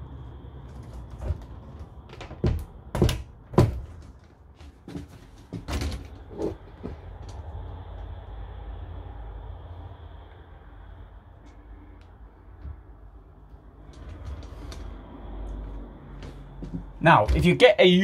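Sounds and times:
plastic shower doors knocking: 2.1 - 4.2.

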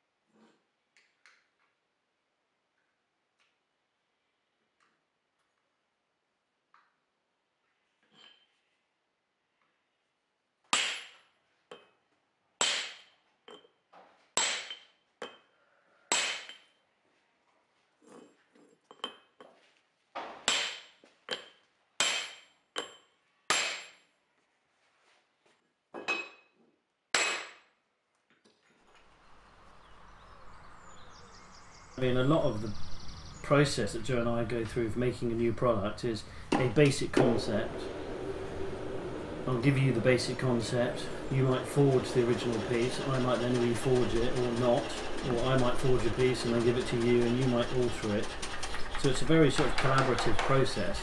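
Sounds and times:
hammer striking metal punch: 10.8 - 11.2, 12.6 - 13.1, 14.4 - 15.4, 20.4 - 24.0.

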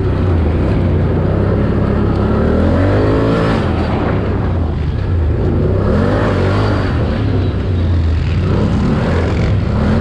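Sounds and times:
quad bike engine running: 0.0 - 10.0.

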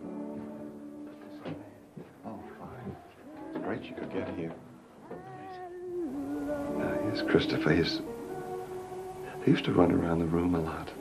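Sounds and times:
person singing long note: 5.1 - 10.7.

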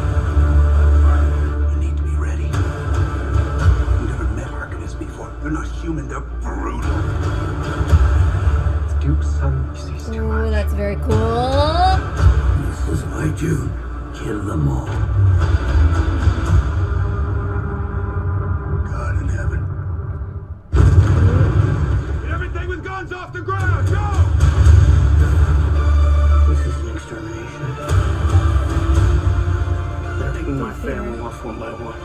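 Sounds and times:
movie trailer score: 0.0 - 32.0
man speaking: 1.0 - 2.6, 4.0 - 7.0, 9.0 - 10.4, 30.2 - 32.0
deep heavy rumble: 16.9 - 23.0
sharp hit: 20.7 - 22.7
explosion boom with deep rumble: 20.7 - 23.0.

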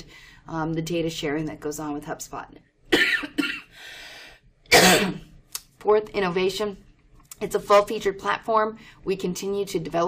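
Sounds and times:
person coughing: 2.9 - 3.8, 4.7 - 5.3.

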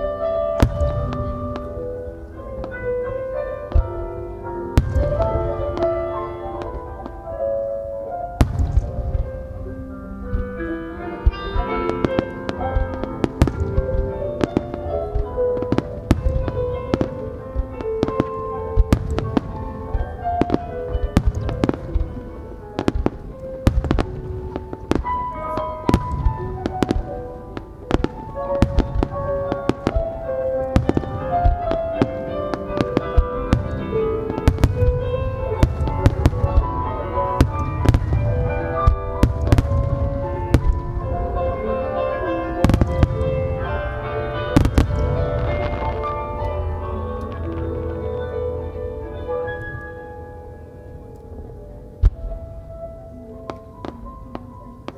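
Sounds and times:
chiming bell-like music: 0.1 - 51.9
fireworks launching and bursting: 0.5 - 4.1, 4.7 - 7.7, 8.4 - 47.8.

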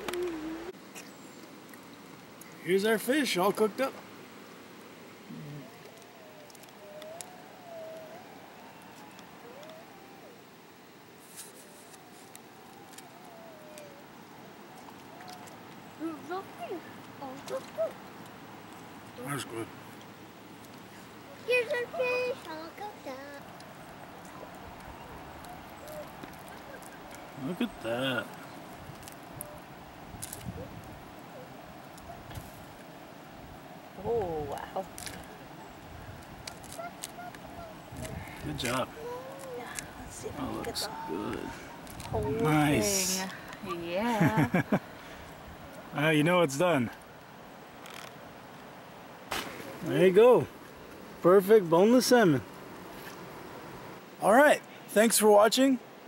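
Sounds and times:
quiet outdoor background: 0.0 - 56.0.

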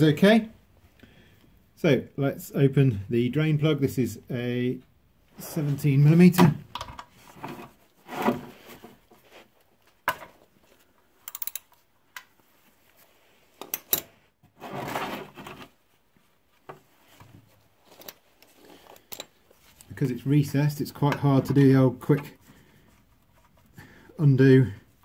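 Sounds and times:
socket wrench clicking: 11.3 - 11.8.

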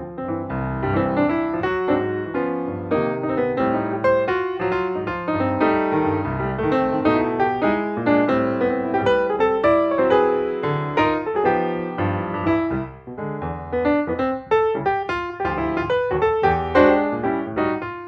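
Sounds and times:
piano music with quick notes: 0.0 - 18.0.

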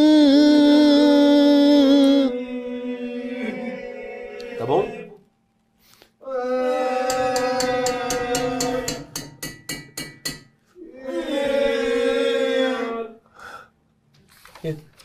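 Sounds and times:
person singing long note: 0.0 - 3.7.

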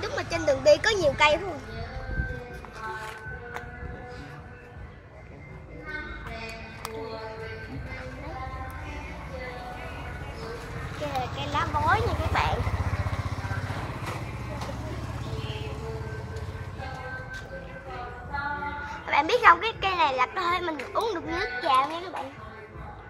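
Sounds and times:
background voices: 6.2 - 22.4
vehicle engine passing by: 8.8 - 17.4.

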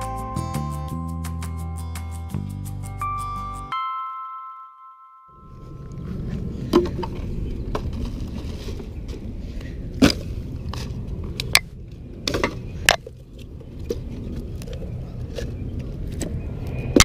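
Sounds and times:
background music: 0.0 - 5.3
low rumble: 5.4 - 17.0.

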